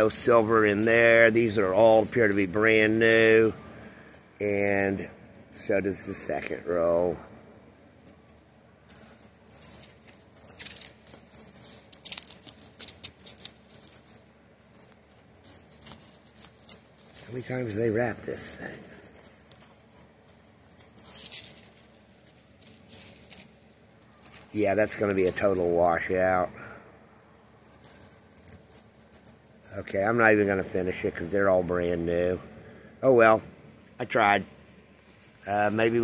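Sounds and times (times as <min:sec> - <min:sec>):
coins clinking: 0:00.0 - 0:07.2, 0:07.8 - 0:26.5, 0:27.4 - 0:30.2
paper coin wrapper tearing: 0:15.1 - 0:23.4.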